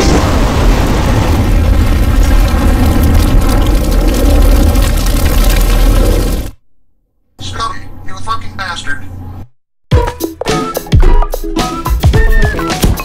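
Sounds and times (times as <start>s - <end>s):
distorted bass rumbling with crackling: 0.0s - 6.6s.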